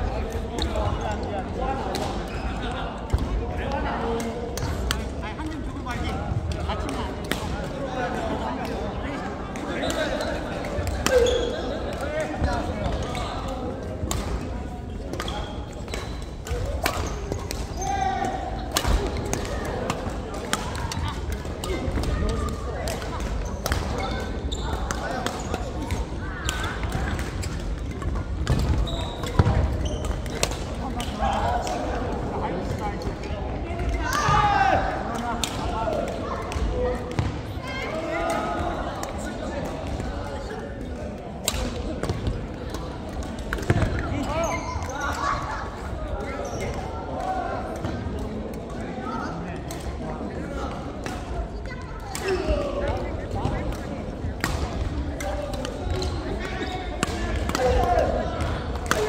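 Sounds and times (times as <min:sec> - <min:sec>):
people talking: 0:00.0 - 0:59.0.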